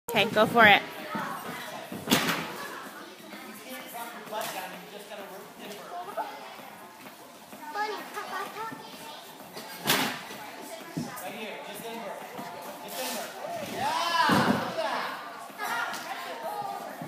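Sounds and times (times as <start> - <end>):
children chattering in a hall: 0.2 - 17.0.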